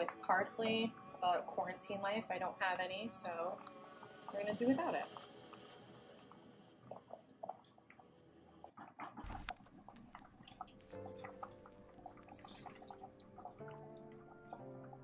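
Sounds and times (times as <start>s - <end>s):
juice dripping: 2.3s - 15.0s.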